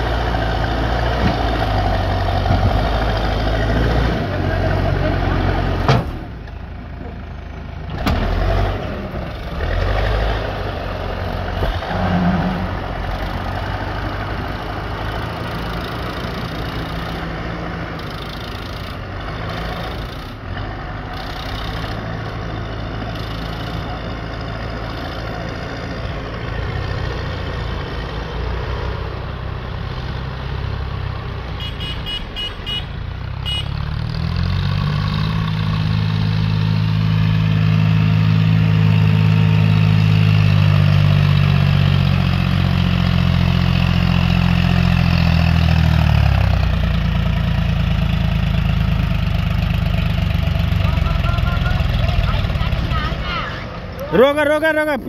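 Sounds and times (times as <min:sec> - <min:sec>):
tractor engine under load: 0:00.0 - 0:55.0.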